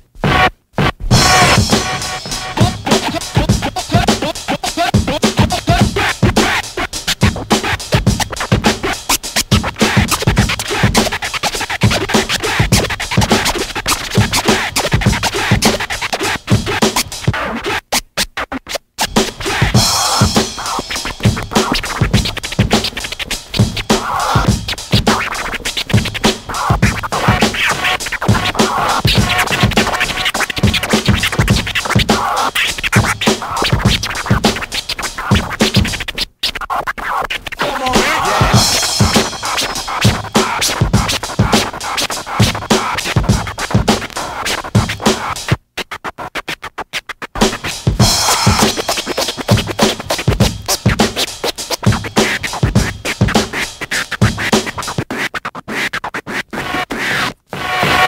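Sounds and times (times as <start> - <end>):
drum beat: 0.0 - 17.4, 19.0 - 36.2, 37.5 - 45.6, 47.3 - 55.2, 57.6 - 58.0
turntable scratching: 0.0 - 58.0.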